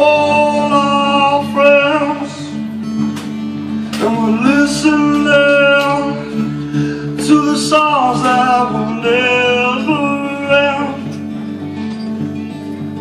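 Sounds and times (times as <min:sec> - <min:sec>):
man singing: 0:00.0 - 0:02.9, 0:03.8 - 0:11.4
acoustic guitar strumming: 0:00.0 - 0:13.0.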